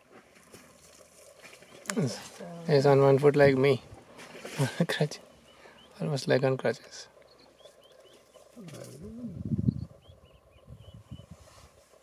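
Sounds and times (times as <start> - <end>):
person's wordless voice sound: 8.6 - 9.5.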